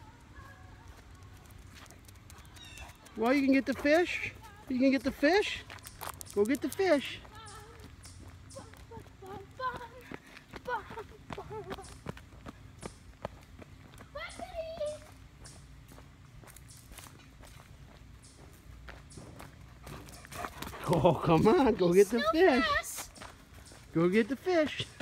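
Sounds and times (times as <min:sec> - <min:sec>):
footsteps on asphalt: 0:00.0 - 0:25.0.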